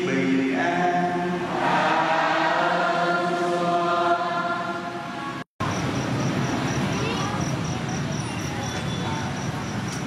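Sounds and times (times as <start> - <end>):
voices singing a slow chant: 0.0 - 5.4.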